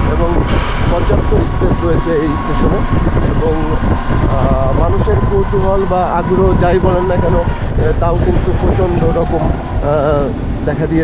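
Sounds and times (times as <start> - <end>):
moving vehicle rumble: 0.0 - 11.0.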